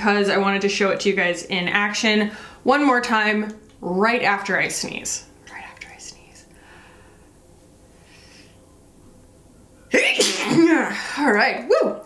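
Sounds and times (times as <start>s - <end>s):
woman breathing: 2.3s - 2.6s, 6.4s - 8.6s
woman sneezing loudly: 9.9s - 11.2s.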